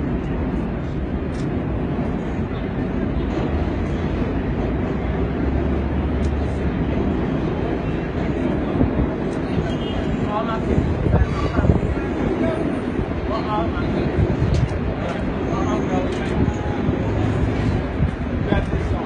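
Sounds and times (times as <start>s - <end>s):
city street traffic rumble: 0.0s - 19.0s
people talking: 8.0s - 17.5s, 18.4s - 19.0s.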